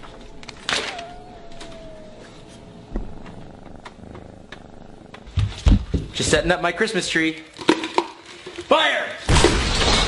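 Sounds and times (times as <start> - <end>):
kitten purring: 0.0 - 6.6
deep thumps: 2.8 - 6.5.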